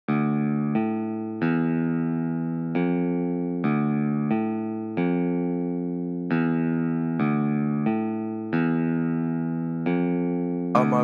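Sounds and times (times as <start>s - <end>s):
shimmering guitar melody: 0.1s - 11.0s.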